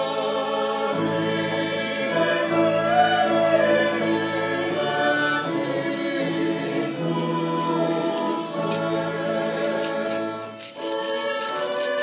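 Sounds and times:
choir singing a hymn: 0:00.0 - 0:12.0
instrumental accompaniment: 0:00.0 - 0:12.0.

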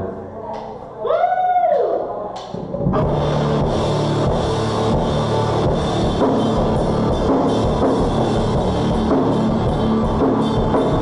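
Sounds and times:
rock band playing live: 0:02.8 - 0:11.0.

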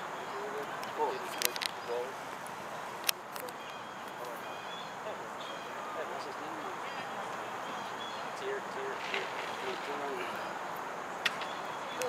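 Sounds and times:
distant voices calling: 0:00.0 - 0:12.0
outdoor background noise: 0:00.0 - 0:12.0.

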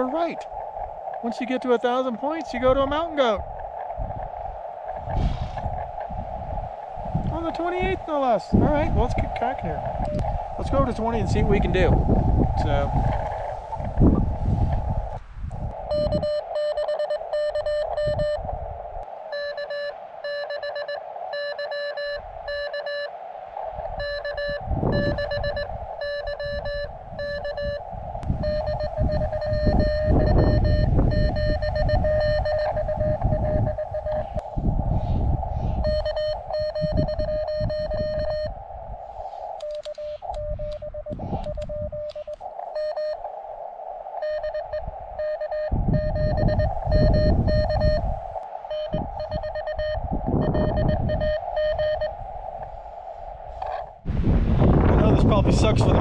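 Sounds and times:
wind rumbling on microphone: 0:00.0 - 0:56.0
morse code tone: 0:15.9 - 0:18.4, 0:19.3 - 0:23.1, 0:24.0 - 0:27.8, 0:28.4 - 0:34.4, 0:35.8 - 0:38.5, 0:39.6 - 0:43.2, 0:44.2 - 0:48.1, 0:48.7 - 0:52.1.

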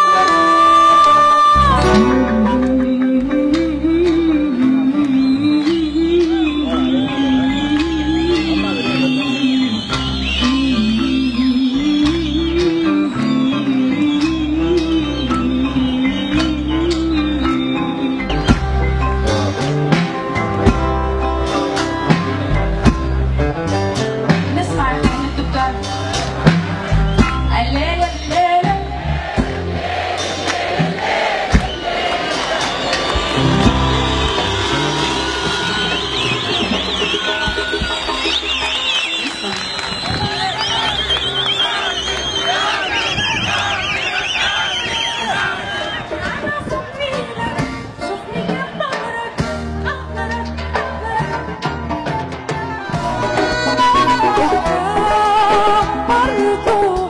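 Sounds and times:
crowd cheering: 0:00.0 - 0:24.4, 0:25.2 - 0:47.4, 0:50.1 - 0:57.0
live band playing: 0:00.0 - 0:57.0.

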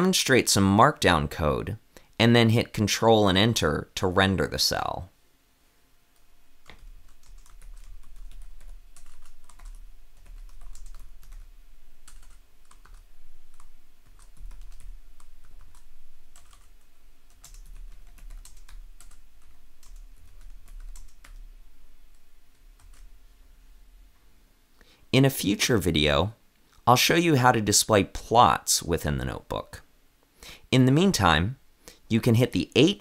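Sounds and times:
keyboard typing clicks: 0:06.2 - 0:11.4.

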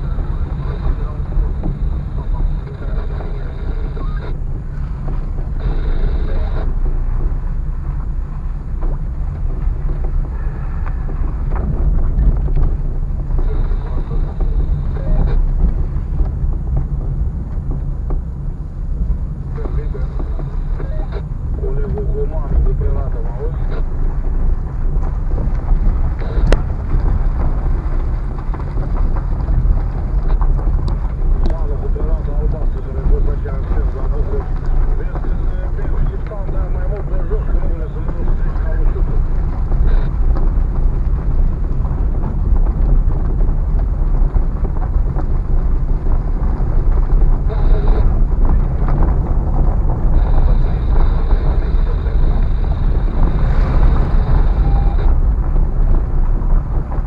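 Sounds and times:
car rumbling on rough road: 0:00.0 - 0:57.0.

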